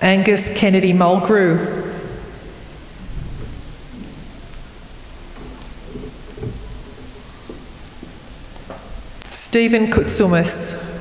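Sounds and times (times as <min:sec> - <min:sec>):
low rumble with hiss: 0:00.6 - 0:11.0.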